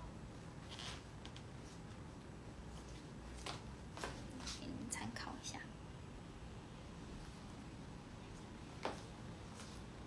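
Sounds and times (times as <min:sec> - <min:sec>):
woman's soft whispery voice: 0:04.4 - 0:05.7.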